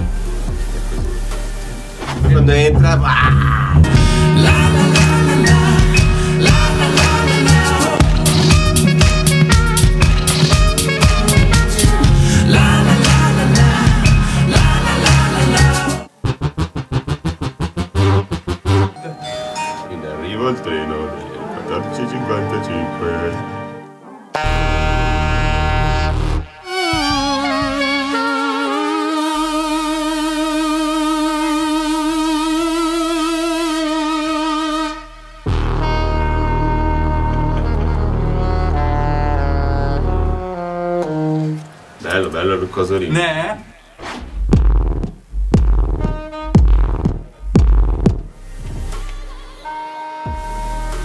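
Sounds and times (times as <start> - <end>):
deep bass hits: 0.0 - 15.4, 16.2 - 19.0, 44.0 - 49.0
rapid chopped synth chords: 4.0 - 19.0, 44.3 - 49.0
man's voice in pitch-bending bursts: 42.0 - 44.0.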